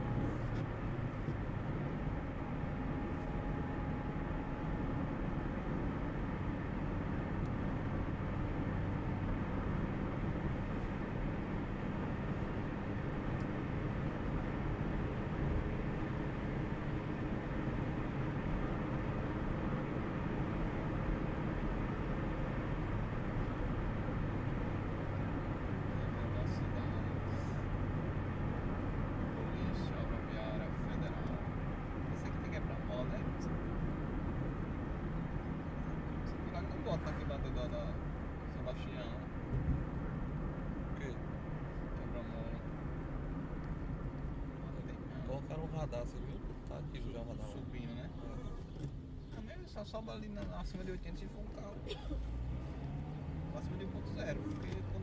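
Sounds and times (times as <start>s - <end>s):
car engine and tyre noise: 0.0s - 55.0s.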